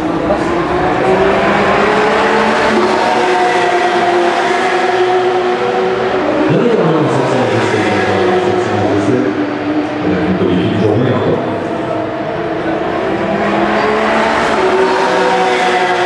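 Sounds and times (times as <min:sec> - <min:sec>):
race car engine running hard: 0:00.0 - 0:16.0.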